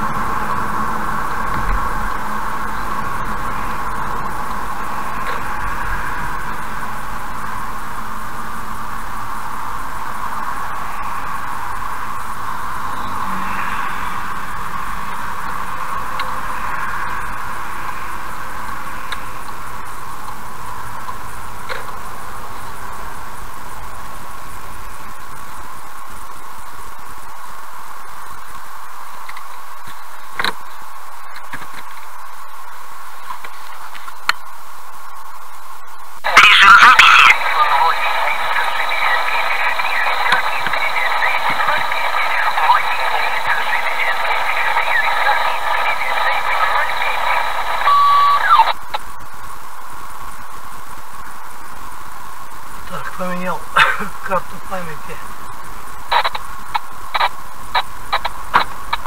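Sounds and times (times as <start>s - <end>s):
radio speaker hiss: 0.0s - 59.0s
tinny garbled radio voice: 36.2s - 48.8s, 52.9s - 55.4s.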